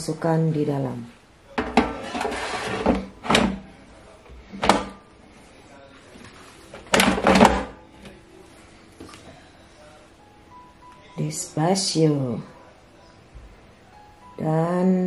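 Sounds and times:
air fryer drawer knocks and scrapes: 0:01.6 - 0:03.6, 0:04.6 - 0:05.0, 0:06.9 - 0:07.8
drawer clacking shut: 0:01.6 - 0:03.6, 0:06.8 - 0:07.8.

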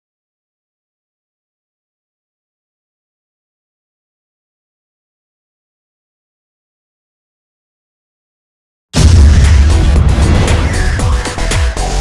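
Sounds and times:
deep bass rumble: 0:09.0 - 0:11.6.

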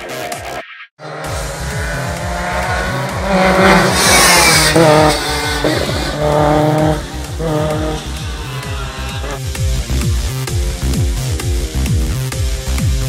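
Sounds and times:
electronic music with steady beat: 0:00.0 - 0:13.0
rally car engine revving past: 0:01.0 - 0:09.4.

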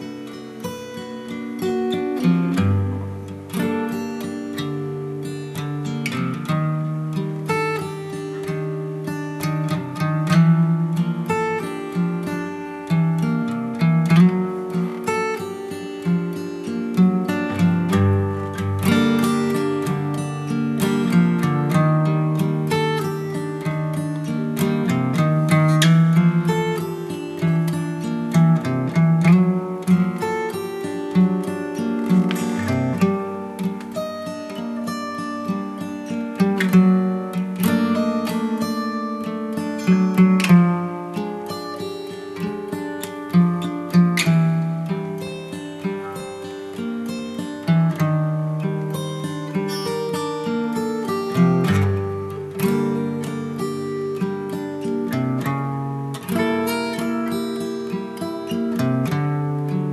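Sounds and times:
acoustic guitar picked and strummed: 0:00.0 - 0:59.9.

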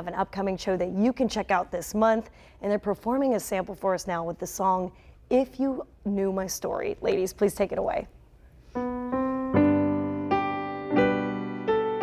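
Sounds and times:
digital piano chords: 0:08.8 - 0:12.0.

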